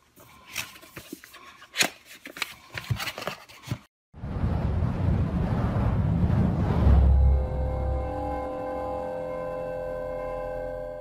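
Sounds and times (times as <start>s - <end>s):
whoosh with deep rumble: 4.2s - 9.6s.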